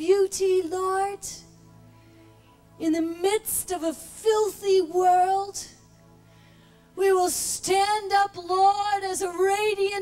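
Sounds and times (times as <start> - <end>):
woman singing into microphone: 0.0 - 1.4, 2.8 - 5.8, 7.0 - 10.0.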